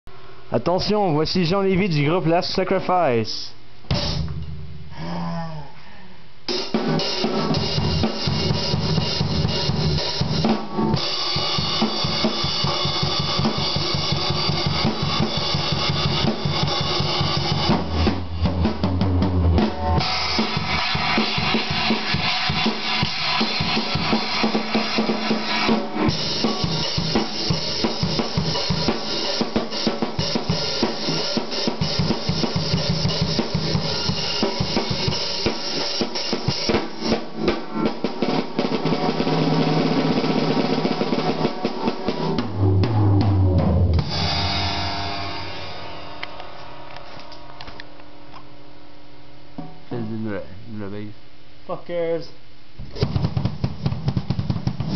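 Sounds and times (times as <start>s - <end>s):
drum kit playing loose beat: 3.8s - 4.9s, 6.5s - 47.8s, 52.9s - 54.9s
heavy low drum hits: 42.0s - 46.9s.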